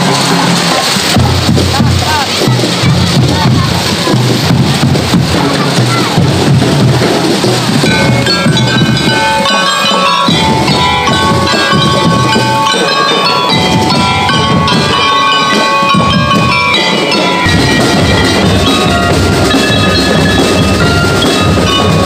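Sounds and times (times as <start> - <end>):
mallet percussion melody: 0.0 - 22.0
marching band drums: 0.0 - 22.0.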